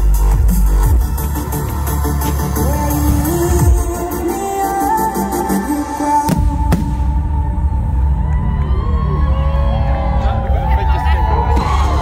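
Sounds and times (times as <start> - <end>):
music playing: 0.0 - 12.0
crowd cheering: 7.3 - 12.0.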